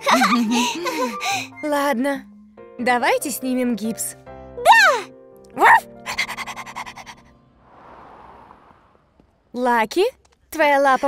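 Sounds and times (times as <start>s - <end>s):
soft background music: 0.0s - 7.8s
soft whoosh: 7.5s - 9.5s.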